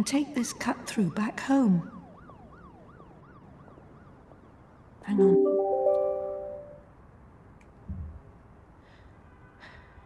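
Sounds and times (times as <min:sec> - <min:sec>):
faint yelp siren: 0:00.0 - 0:06.9.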